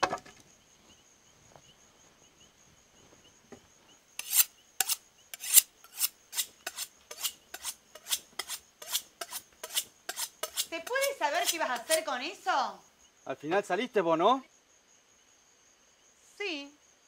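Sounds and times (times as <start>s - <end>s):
knife scraping on sharpening steel: 4.2s - 12.1s.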